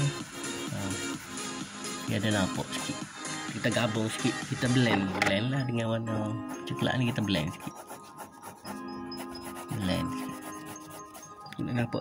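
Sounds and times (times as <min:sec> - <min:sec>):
coloured pencil scratching paper: 0:00.0 - 0:01.6, 0:06.4 - 0:11.5
background music: 0:00.0 - 0:12.0.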